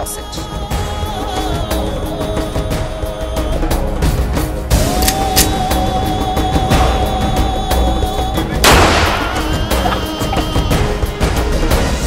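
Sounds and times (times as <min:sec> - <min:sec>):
background music: 0:00.0 - 0:12.0
pistol shot ringing out: 0:08.7 - 0:09.4.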